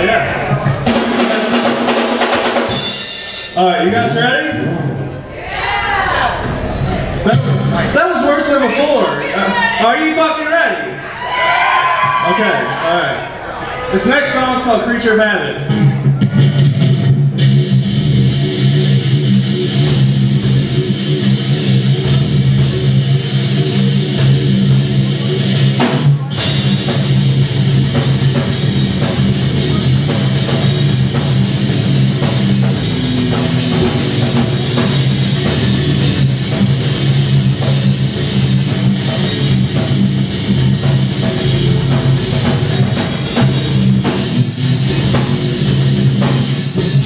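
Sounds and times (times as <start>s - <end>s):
heavy metal band playing: 0.0s - 12.8s, 13.9s - 47.0s.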